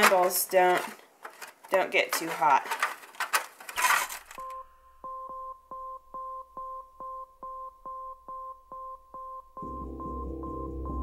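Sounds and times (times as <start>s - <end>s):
music: 9.6s - 11.0s.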